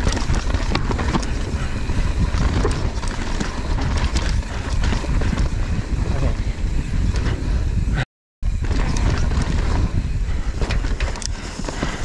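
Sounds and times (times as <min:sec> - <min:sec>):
tyres rumbling on dirt: 0:00.0 - 0:06.4
bike rattling: 0:00.0 - 0:12.0
wind rushing over microphone: 0:00.0 - 0:12.0.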